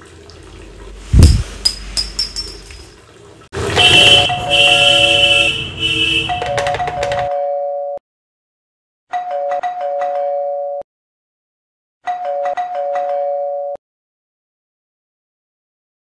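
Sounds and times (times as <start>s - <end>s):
electronic doorbell chime tune: 9.2s - 10.8s, 12.1s - 13.8s.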